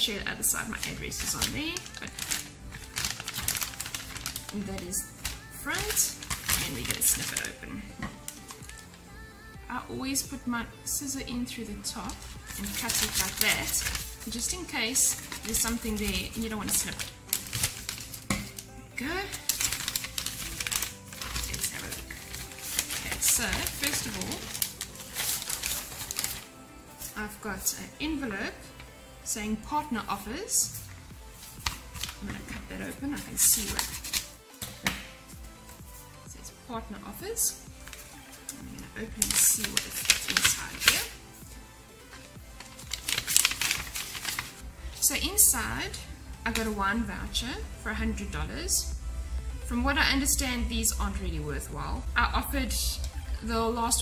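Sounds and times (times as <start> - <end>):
soft background music: 0.0 - 54.0
plastic crinkling: 0.3 - 9.0, 11.8 - 27.2, 31.2 - 32.7, 33.4 - 34.7, 37.8 - 45.1
paper and card rustling: 0.4 - 9.0, 11.9 - 27.2, 30.7 - 36.2, 37.8 - 45.1
scissors cutting plastic: 0.6 - 9.0, 12.0 - 18.7, 19.3 - 26.5, 33.6 - 34.4, 37.9 - 41.2, 42.0 - 44.6.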